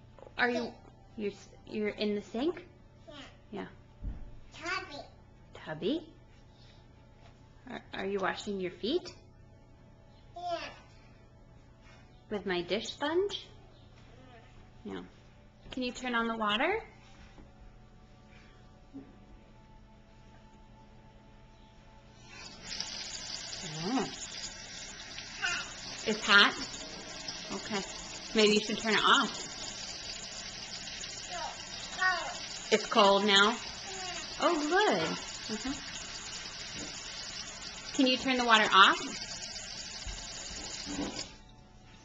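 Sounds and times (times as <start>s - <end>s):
water running into a sink: 22.4s - 41.4s.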